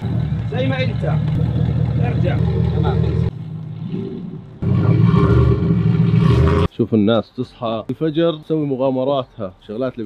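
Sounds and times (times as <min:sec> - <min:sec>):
truck engine idling: 0:00.0 - 0:03.4.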